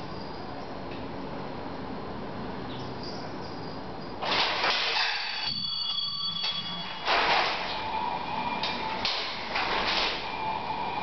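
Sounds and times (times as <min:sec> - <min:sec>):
metal frame rattling bursts: 0:04.2 - 0:05.5.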